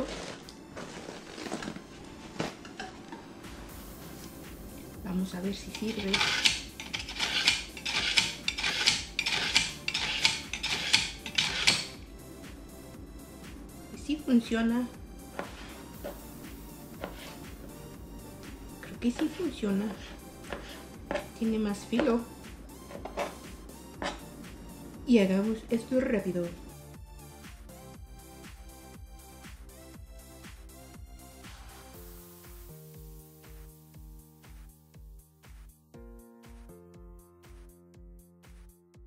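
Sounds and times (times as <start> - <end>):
background music: 0.0 - 39.0
knife grinding in sharpener: 5.6 - 12.0, 17.0 - 17.4.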